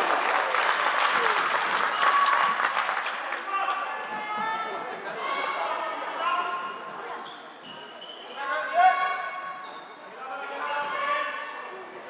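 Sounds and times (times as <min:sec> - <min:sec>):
loud shout: 0:01.1 - 0:02.8.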